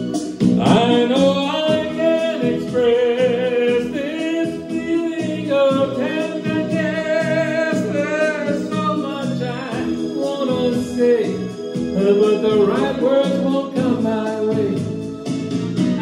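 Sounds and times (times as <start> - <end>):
recorded musical accompaniment: 0.0 - 16.0
man singing into microphone: 0.6 - 15.1.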